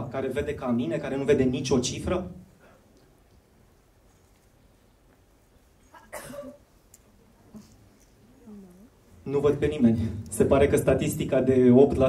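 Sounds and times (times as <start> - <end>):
person coughing: 5.9 - 6.7.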